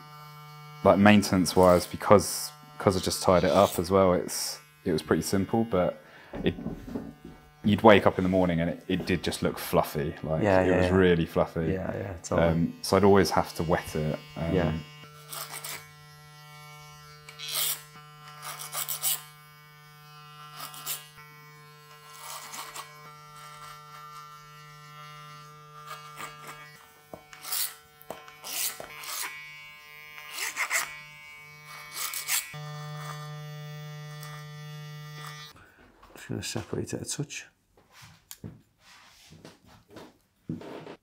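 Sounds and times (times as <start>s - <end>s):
electric hair clippers buzzing: 0.0s - 35.6s.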